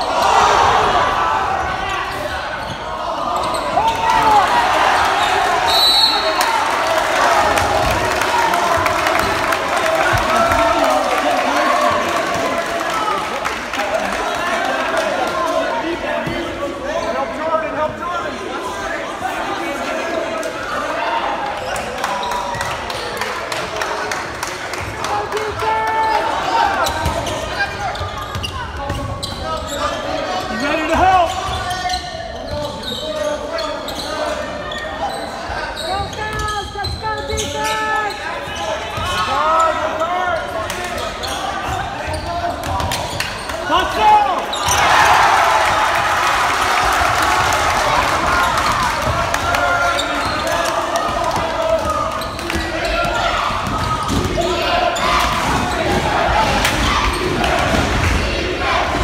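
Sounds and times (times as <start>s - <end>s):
voices and shouts: 0.0s - 59.0s.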